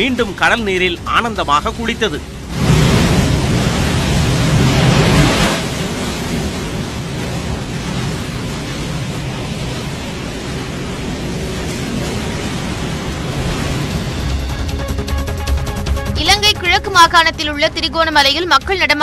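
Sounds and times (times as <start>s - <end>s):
surf breaking on beach: 0.0s - 15.0s.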